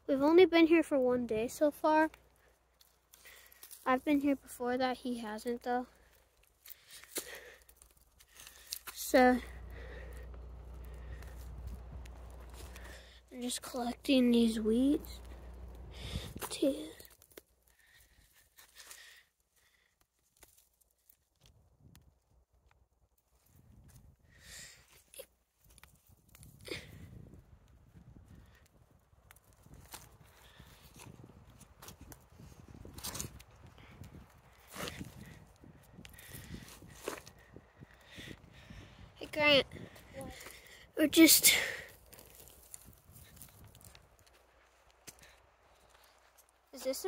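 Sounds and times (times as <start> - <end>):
weeds being pulled up: 7.8 - 17.3
feet shifting over dry leaves: 9.4 - 16.4.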